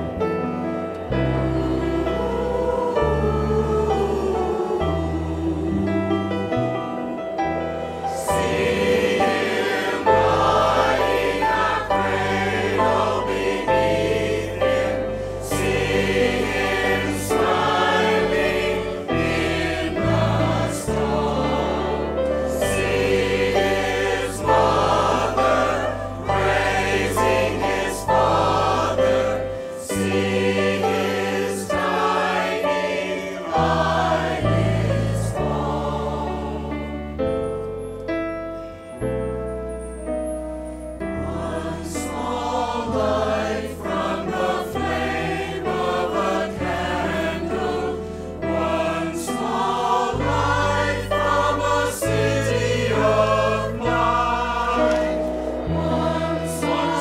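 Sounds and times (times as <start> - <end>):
mixed choir singing a hymn: 0.0 - 37.6, 40.7 - 57.0.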